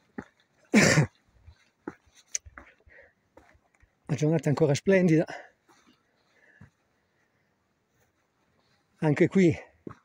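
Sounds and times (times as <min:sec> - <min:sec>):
footsteps on rock: 0:00.0 - 0:07.1, 0:07.8 - 0:10.0.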